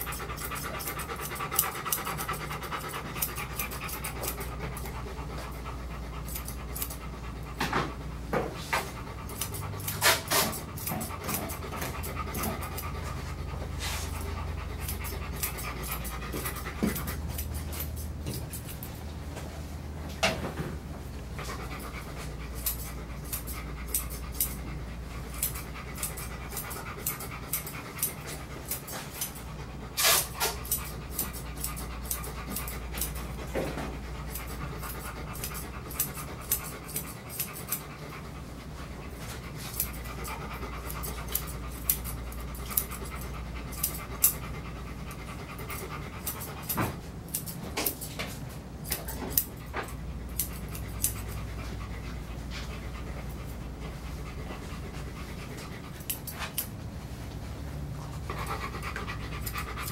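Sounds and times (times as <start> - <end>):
shears snipping fur: 0.0 - 19.6, 21.4 - 38.3, 39.0 - 53.6, 54.3 - 56.7, 58.0 - 59.9
dog panting: 0.0 - 59.9.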